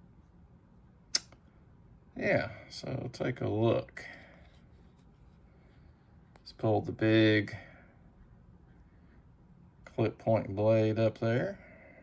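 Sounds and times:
sharp click: 1.1 - 1.4.

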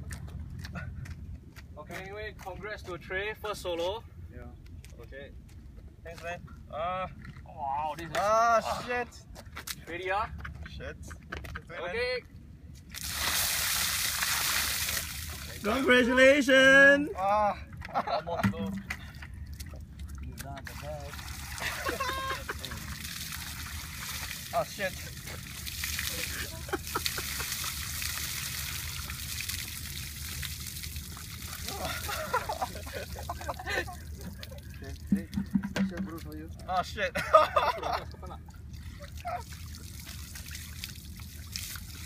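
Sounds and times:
water splashing from a bucket: 12.9 - 15.8, 18.4 - 36.4, 39.0 - 42.0.

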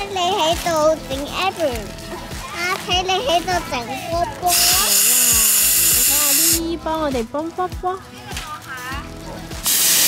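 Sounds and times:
children's voices: 0.0 - 5.1
helium gas hissing into balloon: 4.5 - 6.6, 9.6 - 10.0.

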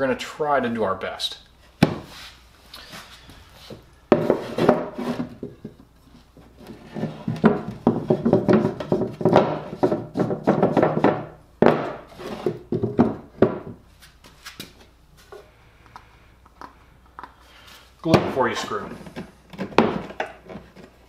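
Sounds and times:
wood scraping: 2.0 - 15.5
wooden boards knocking: 4.1 - 5.9, 6.8 - 13.8, 19.1 - 20.4.

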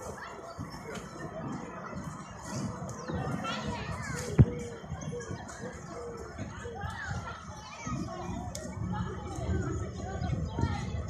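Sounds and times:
children playing: 0.0 - 11.0
murmur of voices: 0.0 - 11.0.

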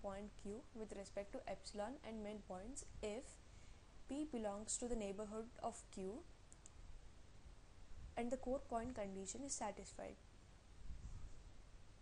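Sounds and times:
faint room hiss: 0.0 - 12.0
small faint clicks: 6.5 - 6.8.

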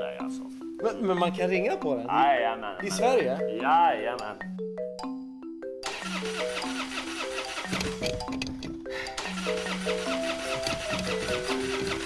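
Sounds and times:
light melodic music: 0.0 - 12.0
car starter cranking engine: 5.8 - 12.0.

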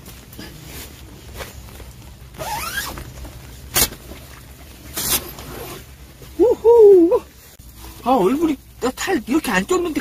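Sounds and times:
zipper pulled: 2.4 - 3.1, 5.0 - 5.9.

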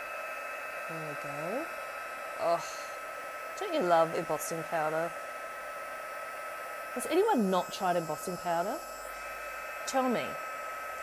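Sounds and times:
heat tool blowing with hiss: 0.0 - 11.0.

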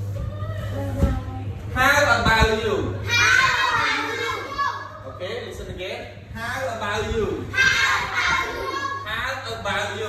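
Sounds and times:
children talking: 3.0 - 5.6, 7.4 - 9.2.

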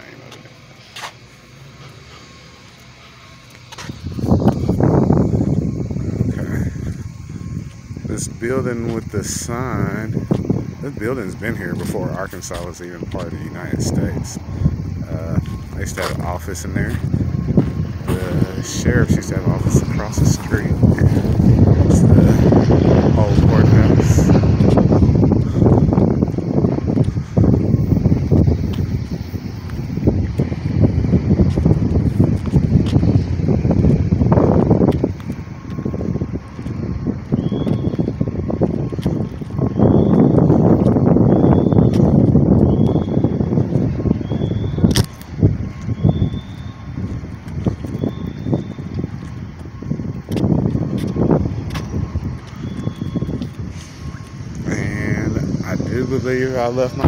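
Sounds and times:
wind buffeting microphone: 0.0 - 57.0
sharp click: 44.9 - 45.3.

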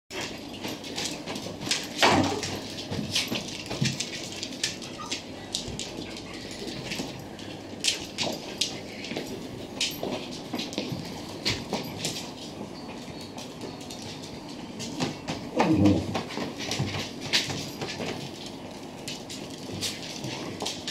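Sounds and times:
dog claws clicking on floor: 0.1 - 20.9.

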